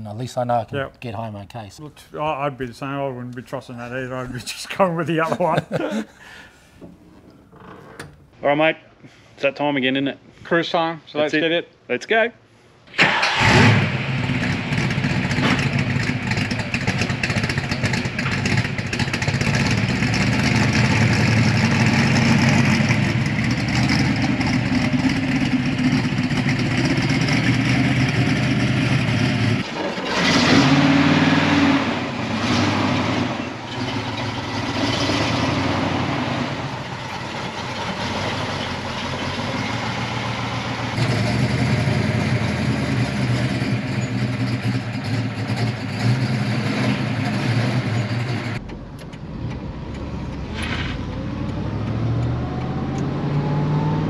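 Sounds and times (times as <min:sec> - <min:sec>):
car engines idling: 0:00.0 - 0:08.3, 0:14.1 - 0:30.3, 0:32.0 - 0:53.3
loud engine burst: 0:12.9 - 0:17.5, 0:19.4 - 0:40.2.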